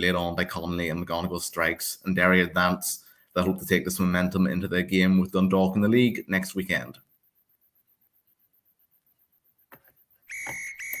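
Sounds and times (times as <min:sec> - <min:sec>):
referee's whistle blasts: 0:10.3 - 0:11.0.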